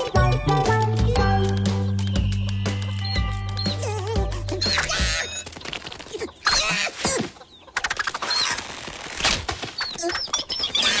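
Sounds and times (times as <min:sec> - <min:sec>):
high chick peeps: 0:09.7 - 0:11.0.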